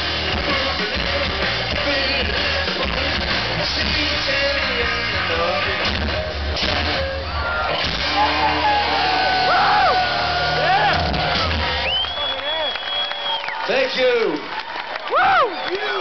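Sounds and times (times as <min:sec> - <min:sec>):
live rock band: 0:00.0 - 0:13.2
fans whooping and yelling: 0:07.2 - 0:16.0.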